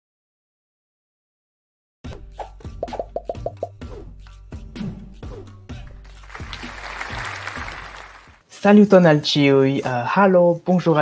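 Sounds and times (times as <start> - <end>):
bubbly pops: 2.8 - 3.7.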